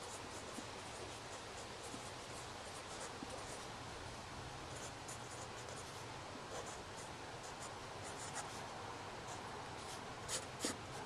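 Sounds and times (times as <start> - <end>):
pen scratching on paper: 0.0 - 3.7, 4.8 - 8.6, 9.3 - 11.0.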